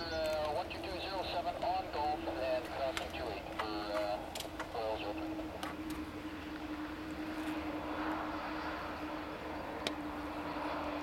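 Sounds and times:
distant jet engine rush: 0:00.0 - 0:11.0
low hum: 0:00.0 - 0:11.0.

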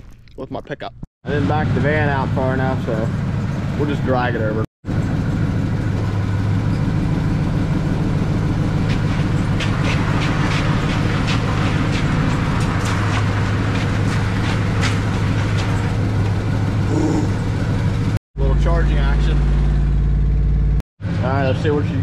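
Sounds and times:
engine idling: 0:01.3 - 0:22.0.

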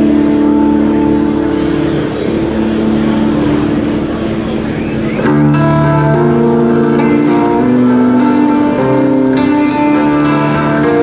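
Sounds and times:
hall noise: 0:00.0 - 0:11.0.

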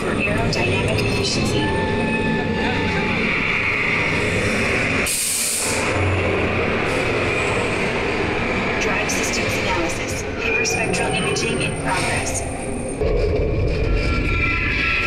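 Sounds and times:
ride vehicle rumbling on track: 0:00.0 - 0:15.0.

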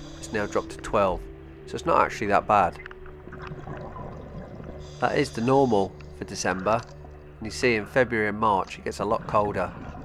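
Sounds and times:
underwater bubbling and crackling: 0:02.5 - 0:10.0.

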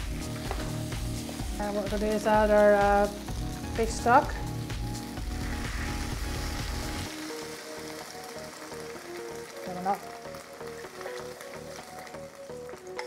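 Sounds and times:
background music melody: 0:00.0 - 0:13.0
pan sizzling: 0:00.0 - 0:13.0
liquid pouring into a pan: 0:05.2 - 0:13.0.

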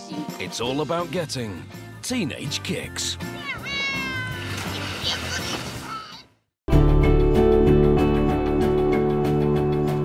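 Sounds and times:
upbeat background music: 0:00.0 - 0:10.0
woman squealing: 0:03.4 - 0:06.2.

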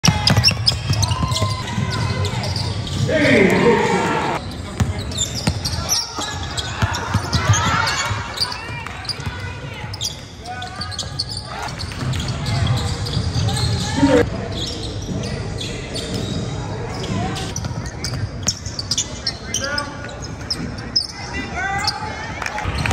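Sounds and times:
basketball bouncing on court: 0:00.0 - 0:03.1, 0:04.7 - 0:13.9
sneakers squeaking: 0:00.0 - 0:22.9.

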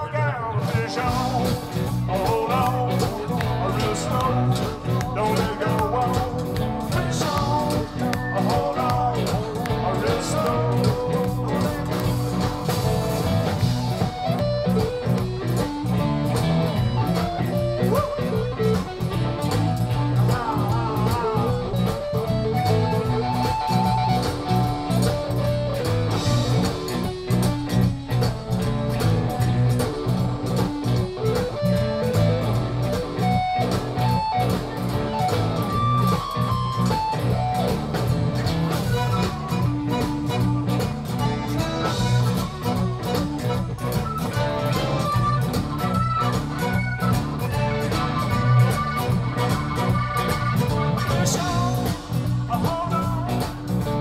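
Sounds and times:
band playing live: 0:00.0 - 0:54.0
electric guitar lead: 0:00.0 - 0:54.0
steady drum beat: 0:00.7 - 0:54.0.

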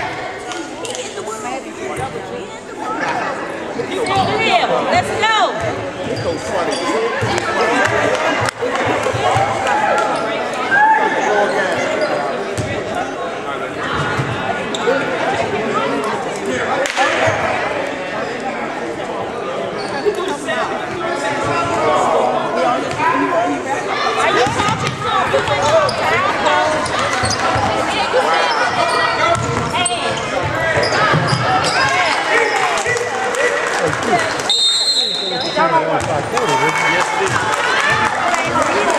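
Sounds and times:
people talking: 0:00.0 - 0:38.9
spectators chatter and calls: 0:00.0 - 0:38.9.

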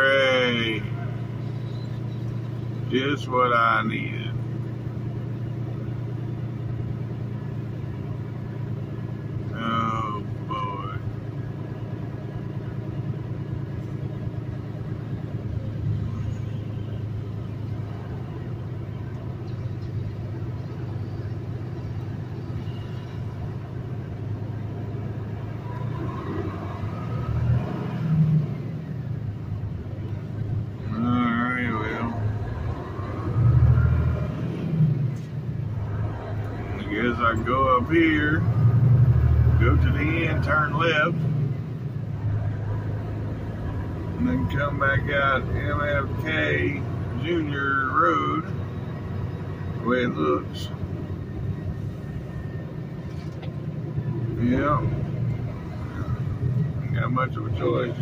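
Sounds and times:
diesel truck engine running: 0:00.0 - 0:58.0.

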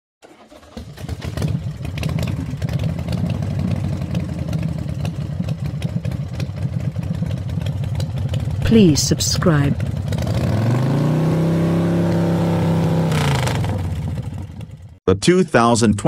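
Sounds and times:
vehicle engine starting and rumbling: 0:00.2 - 0:15.0.

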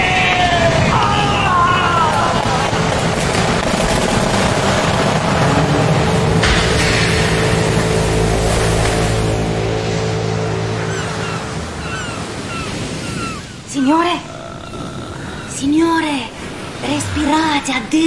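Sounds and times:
waves breaking: 0:00.0 - 0:18.0
low sustained musical chord: 0:05.6 - 0:13.0.

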